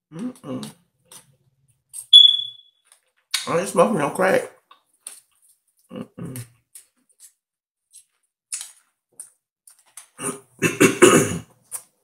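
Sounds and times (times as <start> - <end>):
high-pitched electronic chirp: 2.1 - 2.8.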